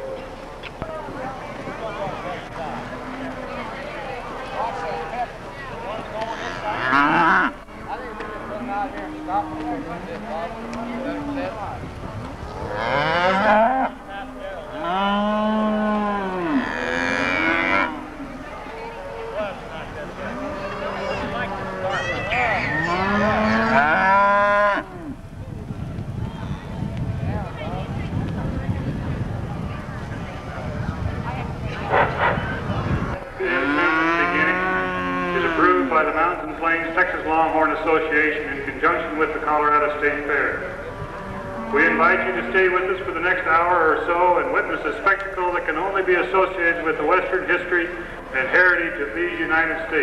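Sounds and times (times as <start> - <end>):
cattle mooing: 6.3 - 7.6, 8.2 - 11.5, 12.6 - 14.0, 14.7 - 19.4, 20.2 - 25.2, 33.4 - 35.8, 40.8 - 42.8
wind rumble on microphone: 7.8 - 14.2, 20.8 - 35.6, 40.4 - 43.1.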